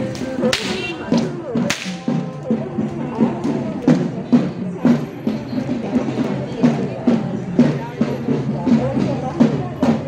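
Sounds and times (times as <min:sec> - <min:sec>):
rhythmic procession drumming: 0:00.0 - 0:10.0.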